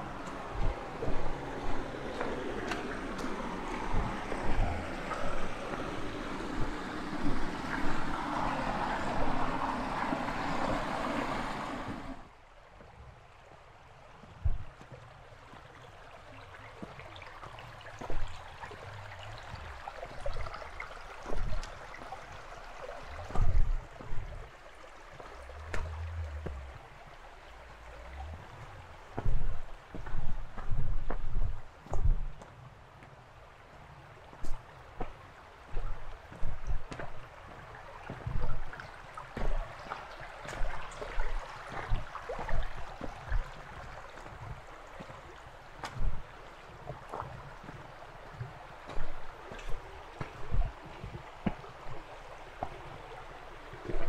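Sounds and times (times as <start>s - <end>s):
footsteps on a trail: 0.0s - 8.1s, 23.2s - 24.4s, 29.1s - 32.5s, 34.3s - 46.3s, 46.9s - 52.8s
stream water rushing: 0.0s - 54.0s.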